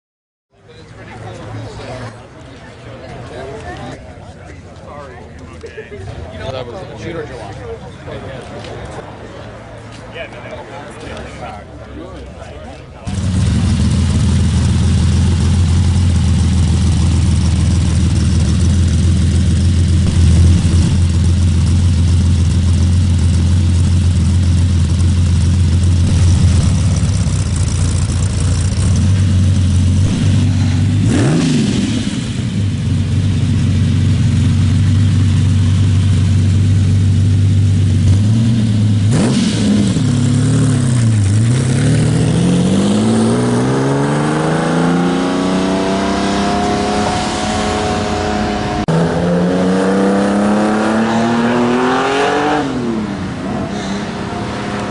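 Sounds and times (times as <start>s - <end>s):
car accelerating away: 13.0s - 54.9s
sports car engine idling: 13.1s - 43.1s.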